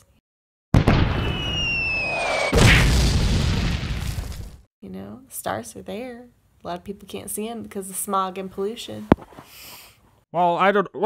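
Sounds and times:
explosion blast: 0:00.7 - 0:04.6
falling whistle: 0:01.1 - 0:02.6.

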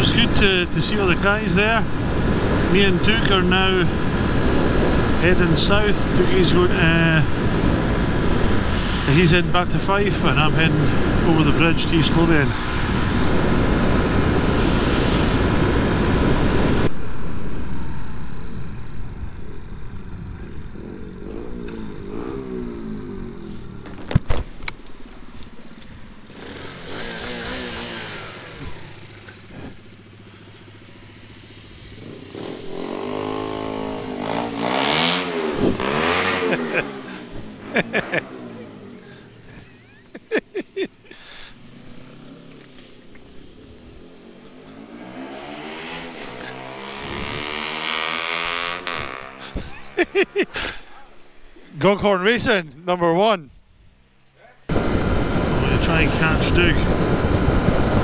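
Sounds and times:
vehicles passing: 0:00.0 - 0:58.0
motorcycle engine running slowly: 0:13.3 - 0:26.4, 0:27.1 - 0:34.1.

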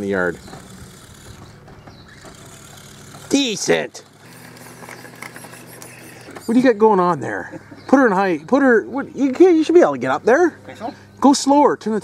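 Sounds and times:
faint electric motor hum: 0:00.0 - 0:12.0.

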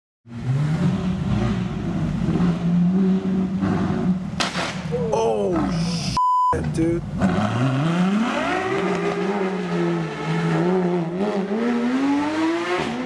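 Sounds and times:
car engines running at low revs: 0:00.3 - 0:11.8.

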